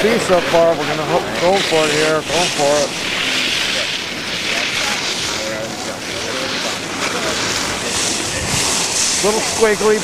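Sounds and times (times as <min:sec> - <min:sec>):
wind hiss on microphone: 0:00.0 - 0:10.0.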